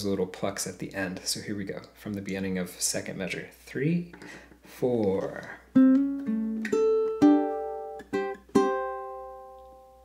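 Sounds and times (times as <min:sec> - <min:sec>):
ukulele fingerpicked riff: 0:05.4 - 0:10.0.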